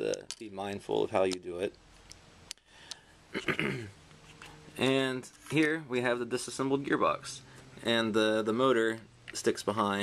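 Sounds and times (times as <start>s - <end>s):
man clearing his throat: 3.3s - 4.0s.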